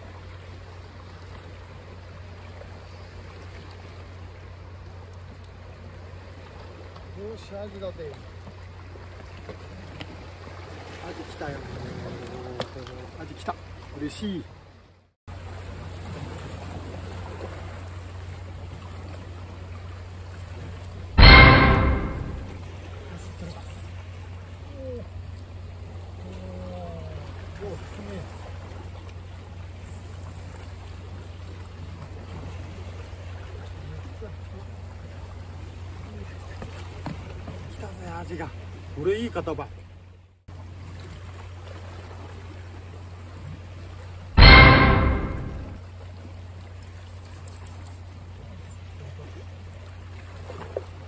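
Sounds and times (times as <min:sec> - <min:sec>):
wind and water hiss: 0:00.0 - 0:20.6, 0:23.0 - 0:39.9
constant low rumble: 0:21.2 - 0:22.6, 0:44.4 - 0:45.8.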